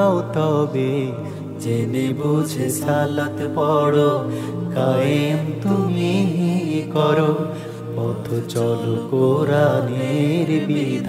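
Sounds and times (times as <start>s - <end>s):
low steady drone: 0.0s - 11.0s
man singing long wavering notes: 0.0s - 11.0s.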